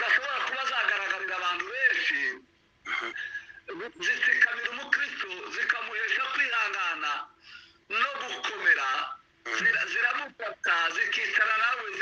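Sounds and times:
person talking over online call: 0.0s - 2.5s, 3.7s - 12.0s.

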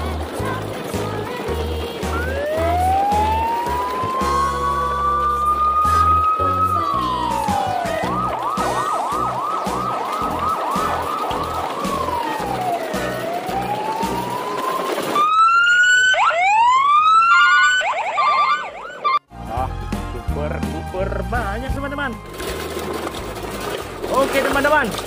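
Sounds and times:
electronic siren wailing: 2.1s - 19.3s
bright siren upward sweeps: 2.2s - 19.3s.

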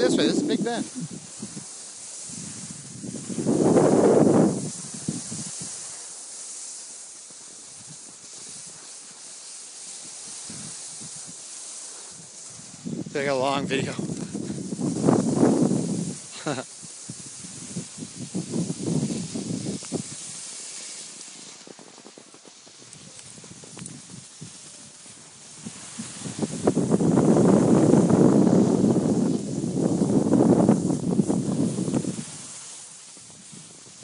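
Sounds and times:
skis scraping over snow: 0.0s - 34.0s
person laughing: 16.4s - 16.7s.

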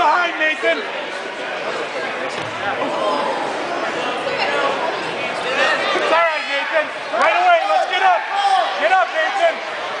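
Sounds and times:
crowd hubbub in echoing hall: 0.0s - 10.0s.

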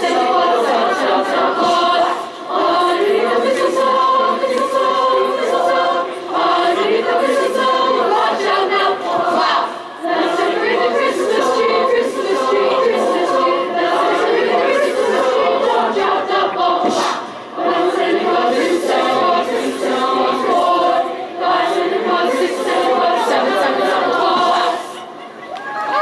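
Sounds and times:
children's choir singing: 0.0s - 26.0s.

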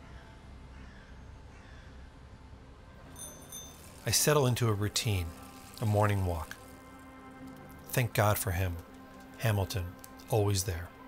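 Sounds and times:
distant bird calls: 0.0s - 2.2s.

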